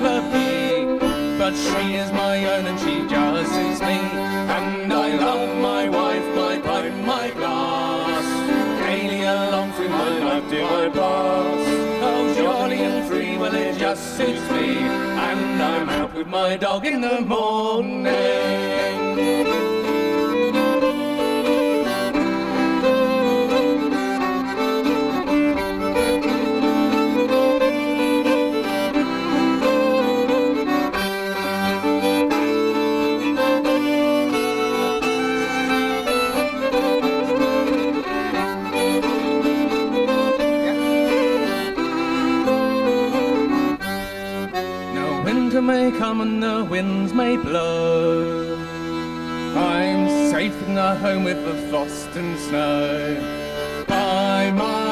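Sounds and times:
accordion held chords: 0:00.0 - 0:16.8, 0:17.4 - 0:54.9
fiddle playing tune: 0:00.0 - 0:16.8, 0:17.7 - 0:54.9.

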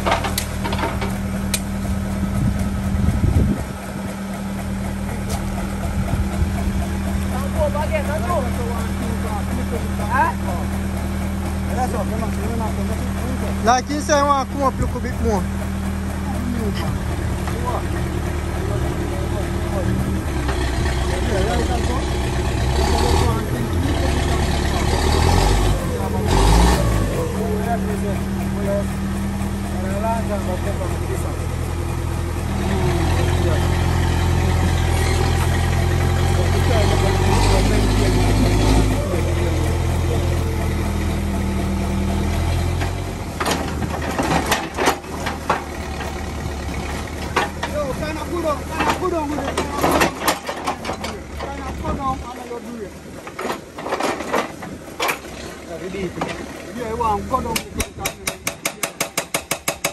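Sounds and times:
sharp knocks and clatters: 0:00.0 - 0:52.4, 0:53.2 - 0:56.8, 0:57.4 - 0:59.9
diesel engine revving: 0:00.0 - 0:58.8.

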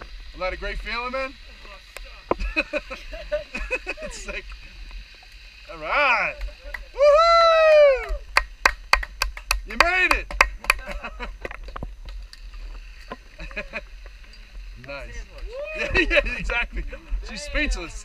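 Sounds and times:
person whooping cheer: 0:06.8 - 0:08.3, 0:15.4 - 0:16.3
person shouting: 0:07.0 - 0:08.2, 0:15.4 - 0:16.1.

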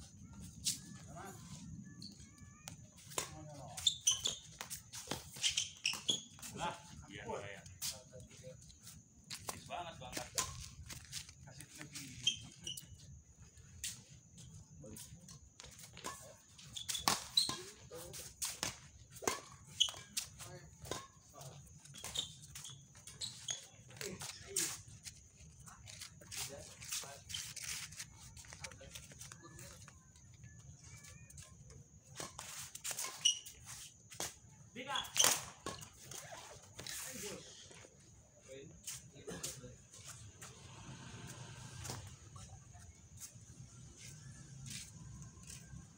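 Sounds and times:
shoes squeaking on court: 0:00.0 - 0:07.0, 0:07.7 - 0:45.9.

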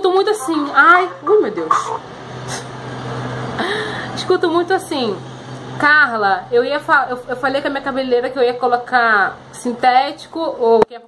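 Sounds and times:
constant low hum: 0:00.0 - 0:11.0
passing motor vehicle rumble: 0:01.0 - 0:09.6.

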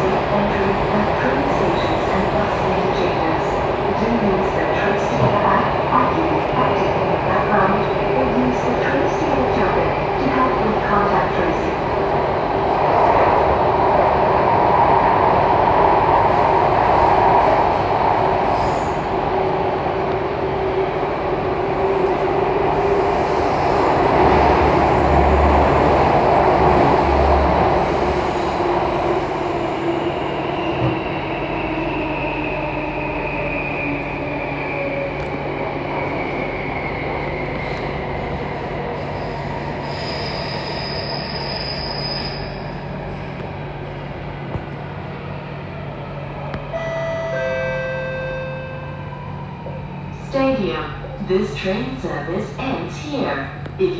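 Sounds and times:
train rumble and wheel-on-rail noise: 0:00.0 - 0:53.9
high squeal: 0:39.8 - 0:42.7.

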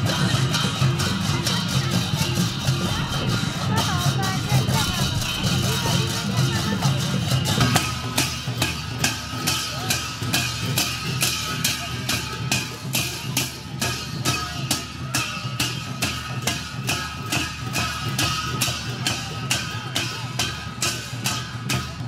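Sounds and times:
barrel drum beating: 0:00.0 - 0:22.0
hand cymbals: 0:00.0 - 0:22.0.

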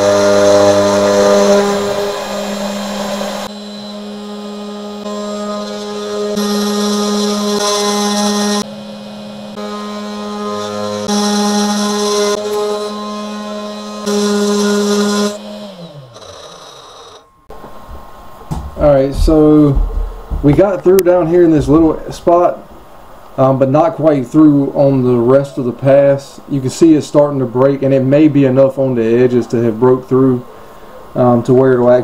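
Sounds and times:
end mill cutting metal: 0:00.0 - 0:17.5
router spindle whining: 0:00.0 - 0:18.0.

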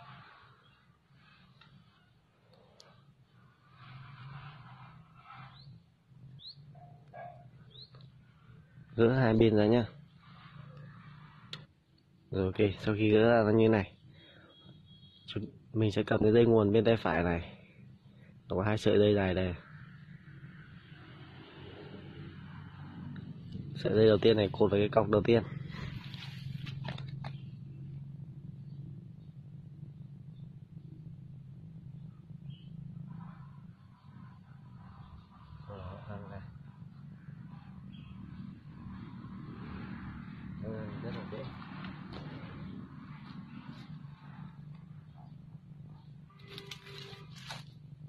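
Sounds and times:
rising bird chirps: 0:05.4 - 0:08.1
nylon line rustling: 0:25.7 - 0:27.2, 0:46.3 - 0:47.8.

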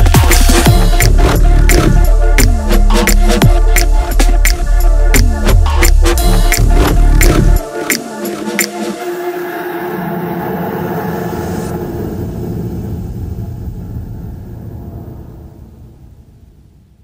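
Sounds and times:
sustained pad tones: 0:09.0 - 0:16.4.

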